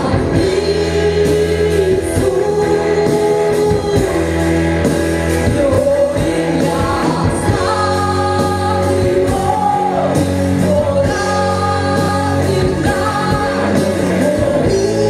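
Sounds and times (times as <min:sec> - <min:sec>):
woman singing into a microphone: 0:00.0 - 0:04.5, 0:05.4 - 0:15.0
band with electric bass: 0:00.0 - 0:15.0.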